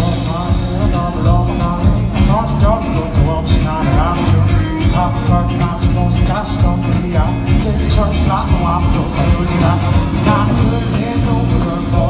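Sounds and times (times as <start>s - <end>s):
bass guitar: 0.0s - 12.0s
drum kit beat: 0.0s - 12.0s
electric guitars: 0.0s - 12.0s.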